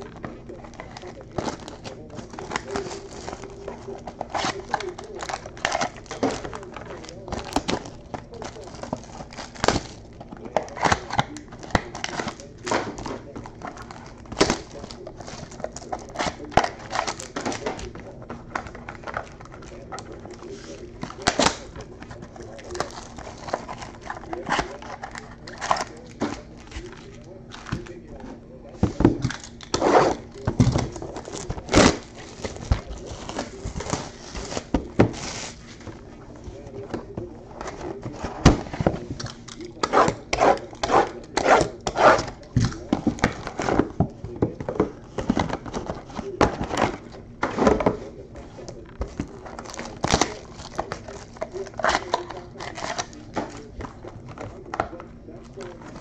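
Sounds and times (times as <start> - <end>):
card packs clicking and tapping: 0.0 - 56.0
foil wrappers crinkling: 0.0 - 56.0
low steady hum: 0.0 - 56.0.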